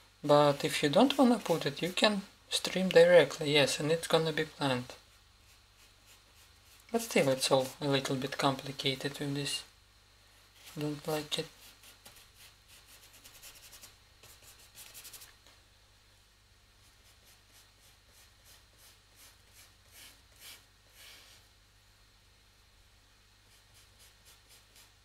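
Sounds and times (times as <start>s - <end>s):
paintbrush scratching on board: 4.9s - 7.8s, 11.5s - 15.3s, 16.8s - 21.4s, 23.5s - 25.0s.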